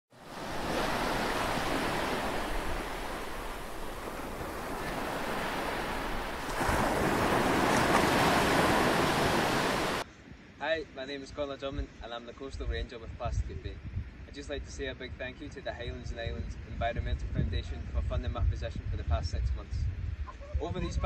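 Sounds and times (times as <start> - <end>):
ocean surf waves breaking: 0.1 - 10.0.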